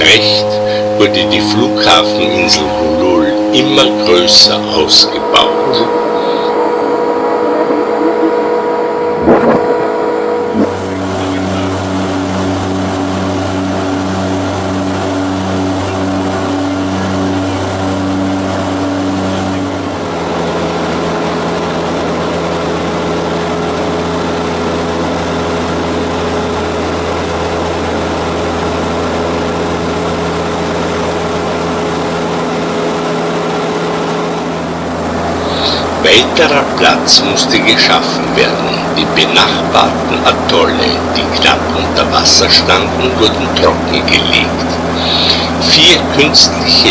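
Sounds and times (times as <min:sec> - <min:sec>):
seaplane engine and propeller drone: 0:00.0 - 0:46.9.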